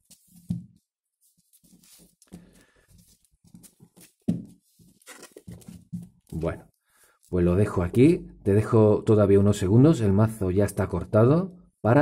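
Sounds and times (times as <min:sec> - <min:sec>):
cards tapping and rustling: 0:01.6 - 0:06.5.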